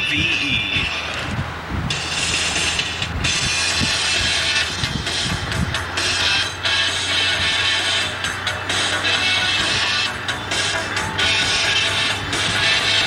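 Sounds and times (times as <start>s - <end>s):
rock music on car radio: 0.0s - 13.0s.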